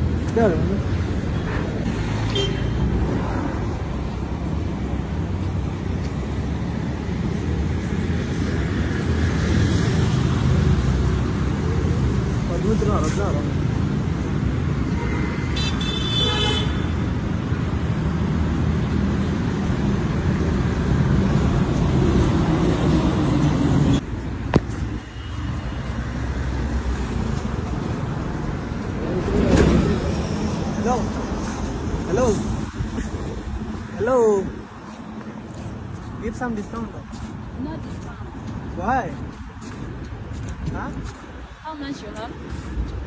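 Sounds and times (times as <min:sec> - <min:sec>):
city road traffic rumble: 0:00.0 - 0:43.0
vehicle horn: 0:15.0 - 0:16.9.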